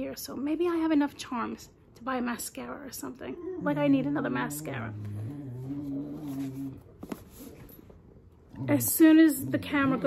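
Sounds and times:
dog growling: 3.2 - 6.9, 8.5 - 10.0.

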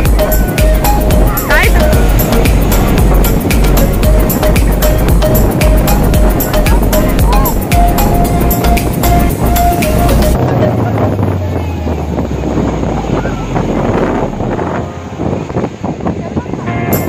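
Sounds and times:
background music with steady beat: 0.0 - 11.5, 16.7 - 17.0
surf breaking: 0.0 - 17.0
wind buffeting microphone: 0.0 - 17.0
faint voices: 4.0 - 17.0.

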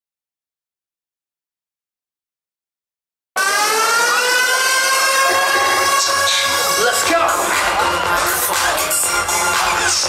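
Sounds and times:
electronic pop song over sound system: 3.4 - 10.0.

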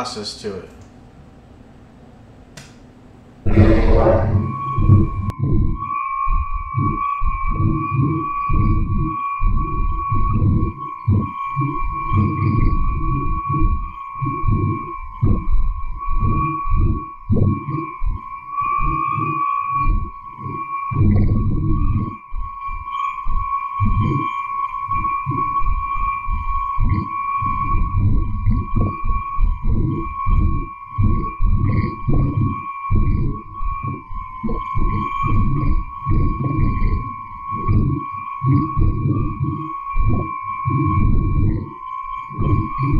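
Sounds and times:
steady high tones: 3.5 - 5.3.

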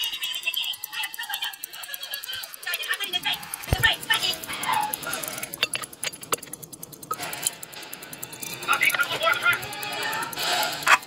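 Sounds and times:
sharp metallic clicks: 0.0 - 11.0
watch ticking quickly: 0.0 - 11.0.

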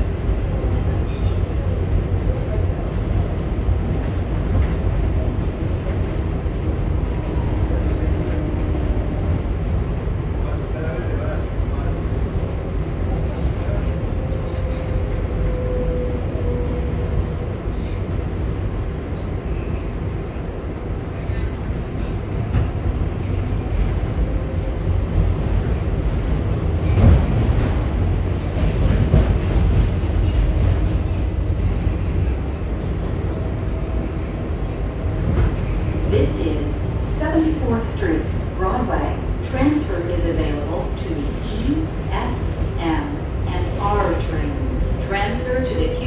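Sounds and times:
subway wheels rumbling: 0.0 - 46.0.

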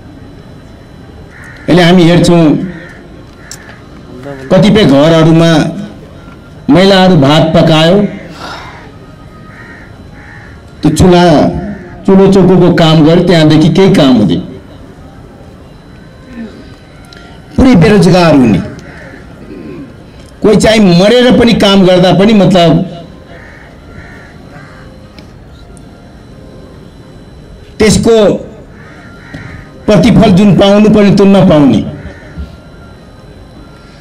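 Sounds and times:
public address system hum: 0.0 - 34.0
faint bird calls: 1.3 - 1.9, 2.6 - 4.6, 8.1 - 10.8, 11.5 - 12.1, 14.7 - 20.2, 23.0 - 25.9, 28.6 - 29.9, 31.8 - 34.0
crow cawing: 1.3 - 5.0, 7.8 - 12.5, 16.2 - 20.0, 22.8 - 25.7, 28.5 - 30.6, 31.6 - 32.9
man speaking: 4.1 - 6.0, 6.7 - 8.3, 10.8 - 14.7, 17.5 - 18.8, 20.4 - 23.2, 27.8 - 28.6, 29.8 - 32.0.

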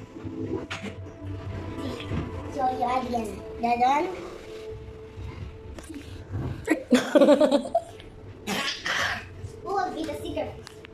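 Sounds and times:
child's voice: 1.7 - 4.3, 9.6 - 10.6
person coughing: 8.4 - 9.3.

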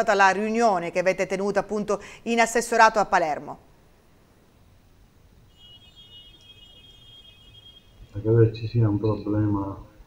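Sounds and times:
high steady electronic tone: 5.4 - 9.6.

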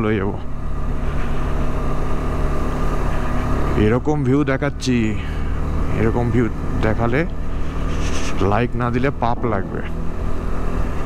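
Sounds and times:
motorcycle engine cruising: 0.0 - 11.0.

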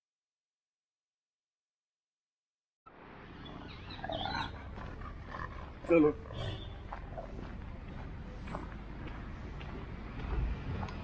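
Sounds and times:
outdoor background noise: 2.9 - 11.0.

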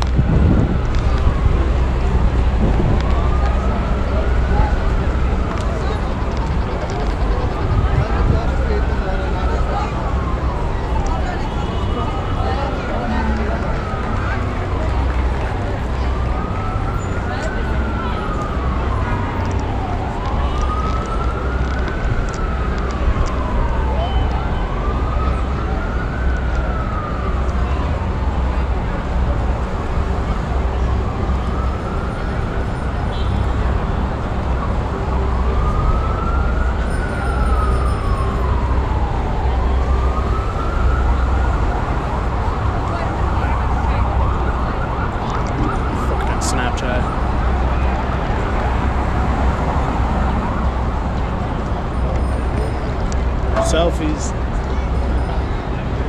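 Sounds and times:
emergency siren wailing: 0.0 - 56.0
heavy city traffic rumble: 0.0 - 56.0.

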